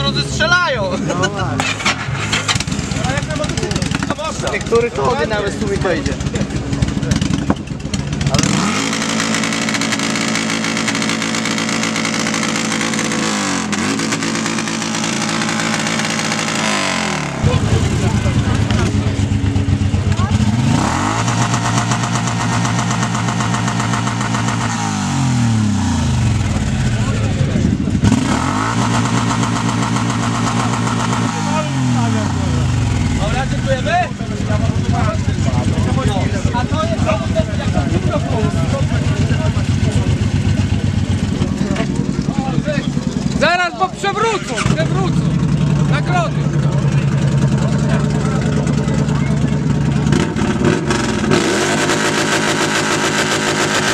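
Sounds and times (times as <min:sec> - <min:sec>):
crowd talking: 0:00.0 - 0:53.7
motorcycle engine revving: 0:00.0 - 0:53.9.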